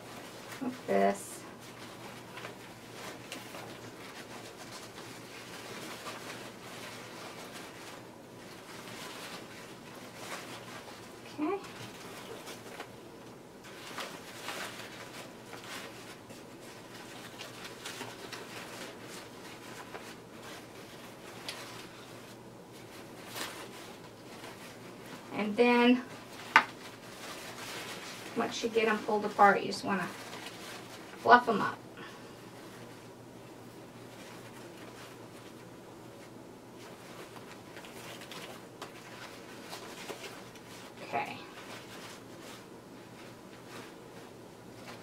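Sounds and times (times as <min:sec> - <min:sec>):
ribbon loops rustling: 0:00.0 - 0:45.0.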